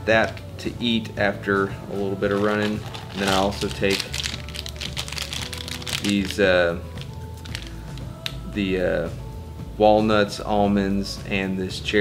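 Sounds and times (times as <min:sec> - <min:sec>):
background music: 0:00.0 - 0:12.0
plastic snack packet crinkling: 0:02.3 - 0:08.3.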